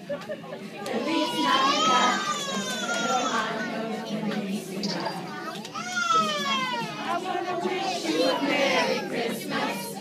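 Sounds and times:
children chattering and calling out: 0.0s - 10.0s
children singing: 0.8s - 10.0s.

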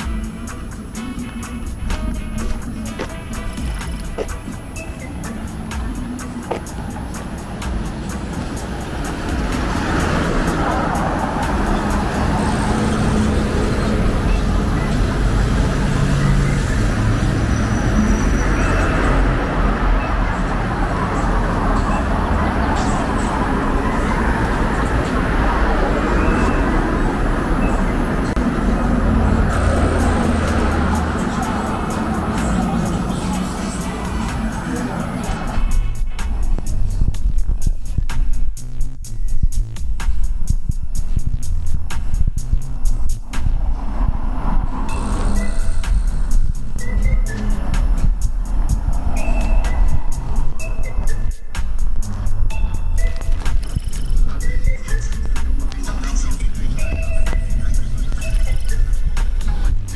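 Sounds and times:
background music: 0.0s - 59.9s
street traffic rumble: 0.0s - 59.9s.

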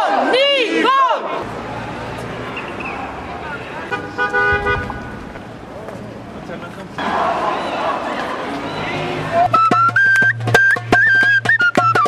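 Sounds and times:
street crowd noise: 0.0s - 12.0s
car horn: 2.4s - 5.3s.

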